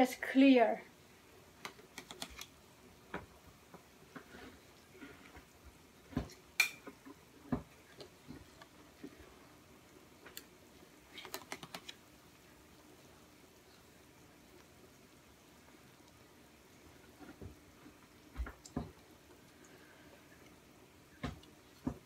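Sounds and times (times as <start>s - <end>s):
stock boiling: 0.9s - 22.0s.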